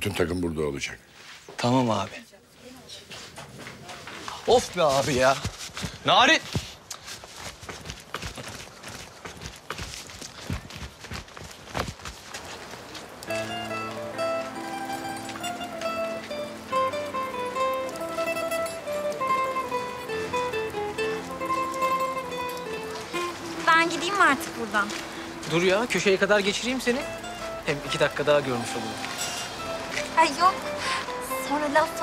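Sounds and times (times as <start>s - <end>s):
hurried footsteps on paving: 2.8s - 32.0s
background music: 13.3s - 32.0s.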